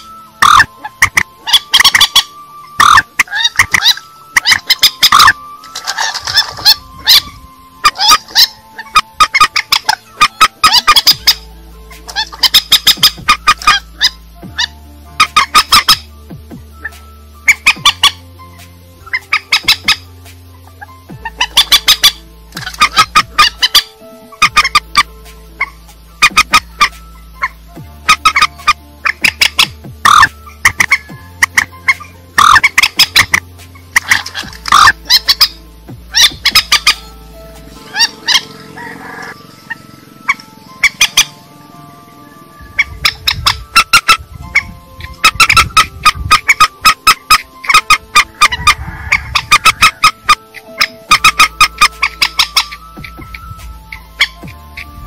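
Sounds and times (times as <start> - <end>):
waterbirds squawking: 0.0 - 18.4, 19.0 - 55.0
music with low held chords: 0.0 - 55.0.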